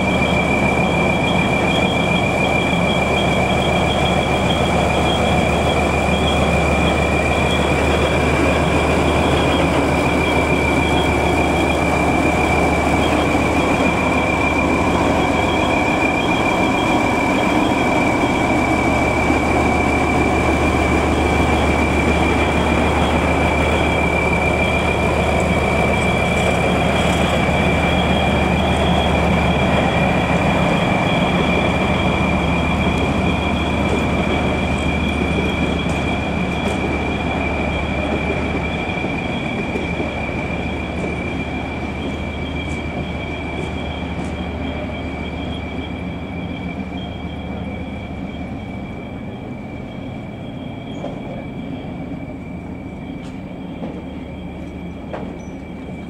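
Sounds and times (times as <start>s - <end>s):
diesel locomotive engine hum: 0.0s - 56.0s
high whine: 0.0s - 56.0s
wheel and rail rumble: 0.0s - 56.0s.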